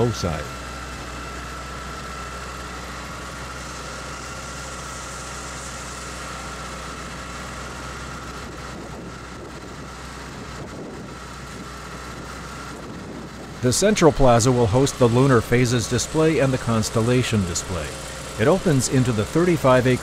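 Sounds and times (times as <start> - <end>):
machinery drone: 0.0 - 20.0.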